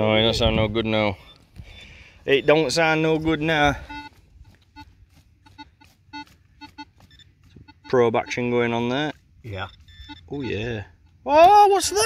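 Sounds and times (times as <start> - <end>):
metal detector probe beeping: 0.1 - 12.0.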